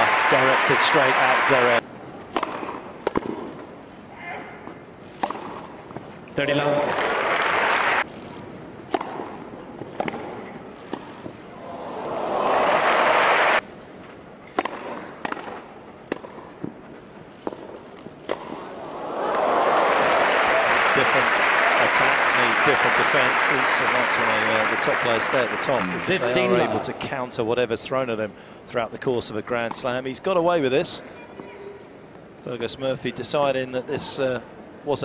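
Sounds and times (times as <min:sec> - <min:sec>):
crowd applause: 0:00.0 - 0:01.8, 0:06.9 - 0:08.0, 0:11.7 - 0:13.6, 0:18.9 - 0:26.7
crowd cheering: 0:00.0 - 0:01.8, 0:06.8 - 0:08.1, 0:11.6 - 0:13.6, 0:18.7 - 0:26.8
tennis ball struck by racquets: 0:02.3 - 0:03.7, 0:05.2 - 0:05.8, 0:08.8 - 0:11.4, 0:14.4 - 0:16.8, 0:17.4 - 0:18.7.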